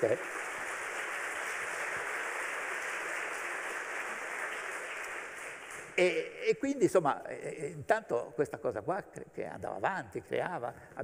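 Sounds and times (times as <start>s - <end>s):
audience applause: 0.0s - 6.3s.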